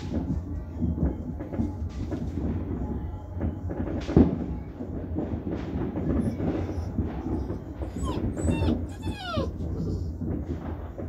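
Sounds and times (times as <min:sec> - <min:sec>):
fireworks barrage rumbling: 0:00.0 - 0:11.0
puppies whining: 0:06.0 - 0:10.8.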